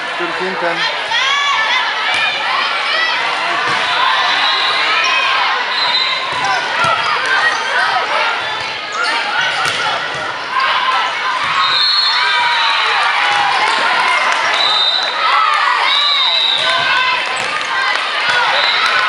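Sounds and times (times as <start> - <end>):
spectators shouting: 0.0 - 19.0
volleyball being struck: 9.5 - 10.3.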